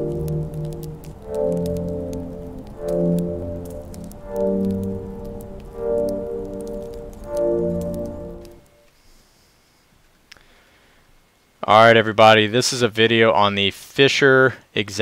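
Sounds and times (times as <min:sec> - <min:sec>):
sustained chords music: 0:00.0 - 0:08.8
faint crackle of clicks: 0:00.0 - 0:09.0, 0:10.0 - 0:10.5.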